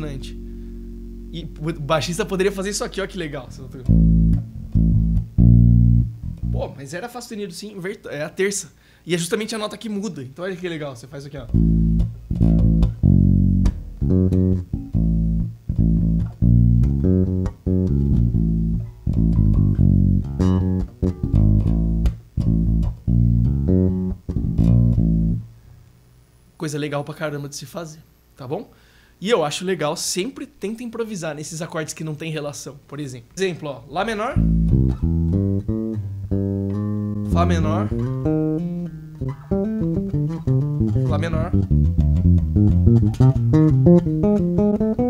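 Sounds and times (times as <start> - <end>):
electric bass guitar: 0.0 - 6.8, 11.4 - 25.7, 34.1 - 45.0.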